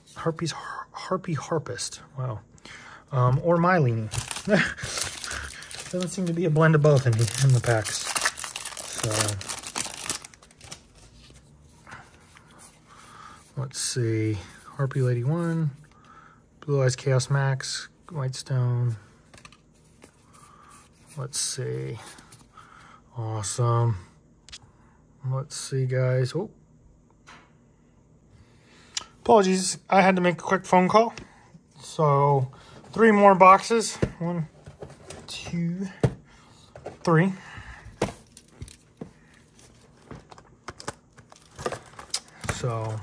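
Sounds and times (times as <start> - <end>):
faint plastic crinkle: 3.8 - 11.4.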